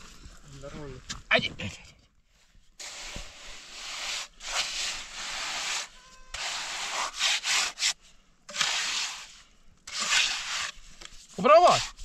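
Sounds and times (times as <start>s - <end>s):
trowel scraping wet concrete: 2.8s - 12.0s.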